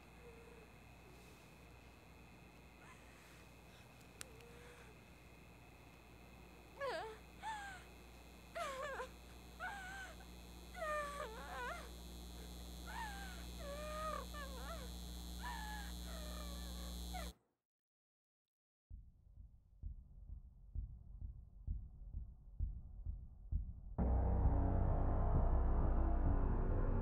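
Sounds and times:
steady low hum: 0:00.0 - 0:17.3, 0:19.8 - 0:27.0.

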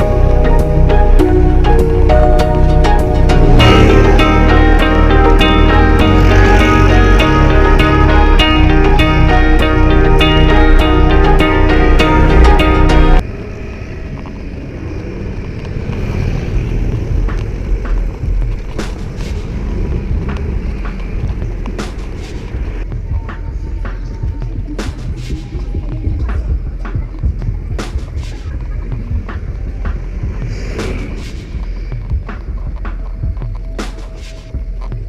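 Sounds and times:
road rumble: 0:00.0 - 0:35.0
wind buffeting microphone: 0:13.2 - 0:33.8.

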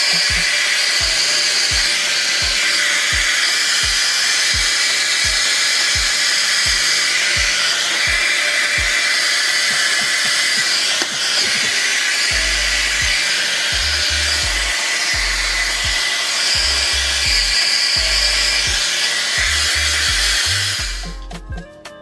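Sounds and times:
hair dryer blowing: 0:00.0 - 0:21.1
background music with low beat: 0:00.0 - 0:22.0.

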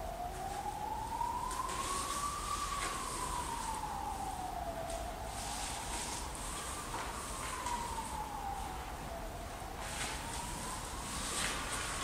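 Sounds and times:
siren-like wailing tone: 0:00.0 - 0:12.0.

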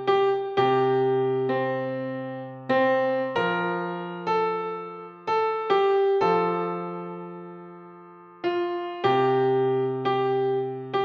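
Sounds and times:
electronic piano chords: 0:00.0 - 0:11.0.

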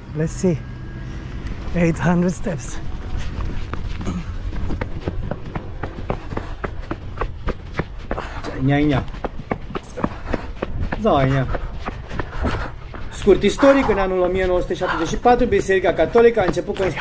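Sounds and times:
footsteps running up stone stairs: 0:03.0 - 0:17.0
man's voice: 0:13.1 - 0:17.0.

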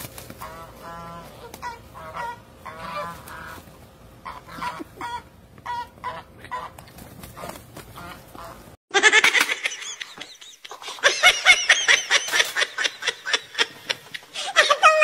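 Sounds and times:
goose honking: 0:00.4 - 0:08.8.

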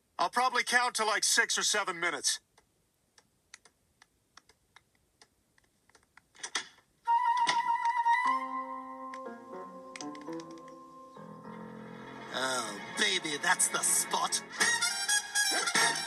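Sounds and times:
keystrokes on laptop keyboard: 0:03.6 - 0:06.7, 0:10.0 - 0:10.8
cartoon music with flute melody: 0:07.1 - 0:11.5, 0:13.4 - 0:16.0.

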